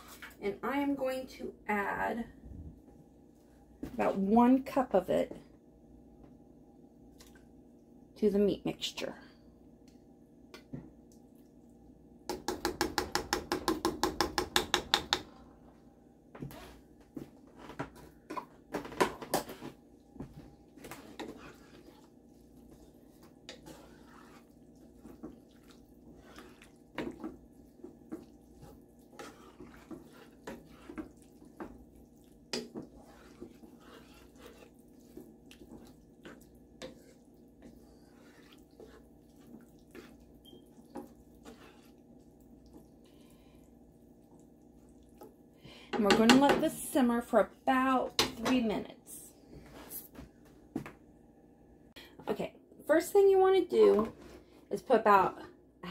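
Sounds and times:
wooden spoon stirring in skillet: 0.0s - 1.2s, 10.5s - 51.0s, 52.0s - 55.3s
spoon tapping and scraping pan: 12.3s - 15.3s, 23.2s - 42.0s, 45.2s - 46.8s, 48.1s - 48.8s.

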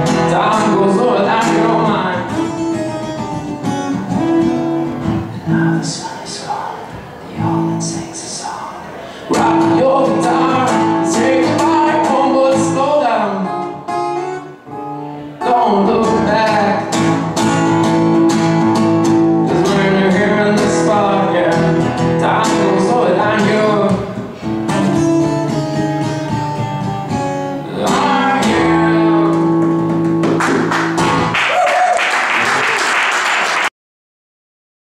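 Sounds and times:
man singing: 0.0s - 2.8s, 5.2s - 14.0s, 14.8s - 17.7s, 19.4s - 25.4s, 27.5s - 30.7s
strummed acoustic guitar: 0.0s - 31.4s.

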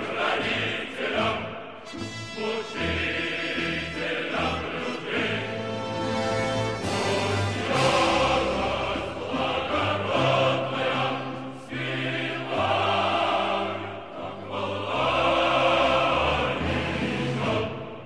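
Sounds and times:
choir singing: 0.0s - 18.0s.

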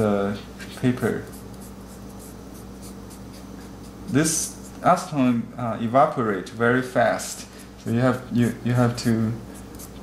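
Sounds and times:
low steady hum: 0.0s - 10.0s
cotton swab scratching paper: 1.0s - 4.8s, 7.8s - 10.0s.

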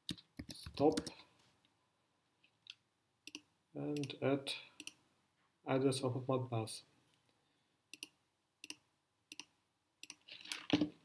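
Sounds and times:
computer mouse clicks: 4.8s - 5.0s, 7.9s - 10.2s.

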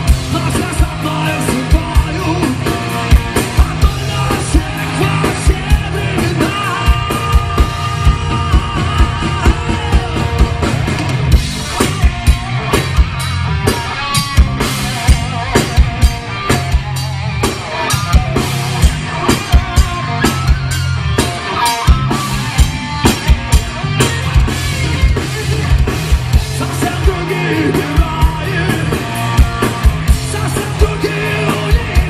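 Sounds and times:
drum kit beat: 0.0s - 32.0s
electric guitars: 0.0s - 32.0s.

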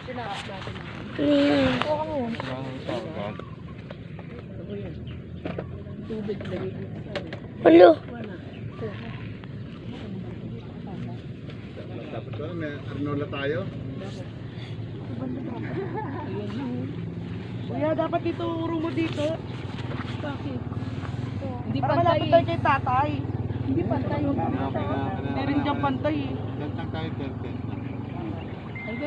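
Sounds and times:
faint voices: 0.0s - 29.0s
low outdoor rumble: 0.0s - 29.0s.

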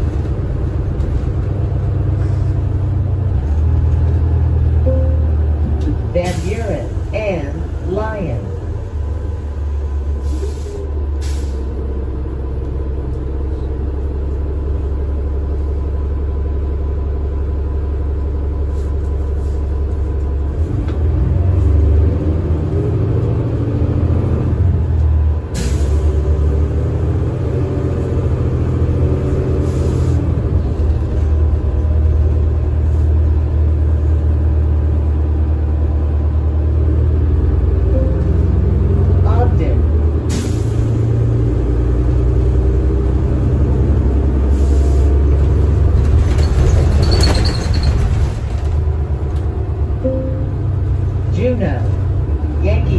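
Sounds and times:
bus engine drone: 0.0s - 52.9s
rising whine: 4.8s - 6.0s, 37.8s - 39.2s, 50.0s - 51.2s.

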